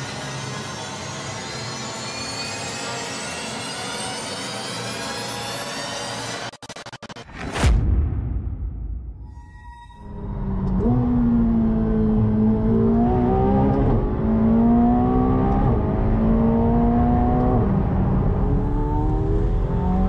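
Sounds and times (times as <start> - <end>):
sports car engine accelerating: 10.1 - 20.0.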